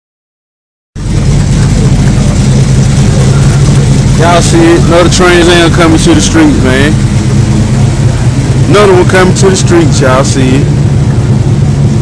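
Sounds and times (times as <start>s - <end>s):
car engine idling: 1.0s - 12.0s.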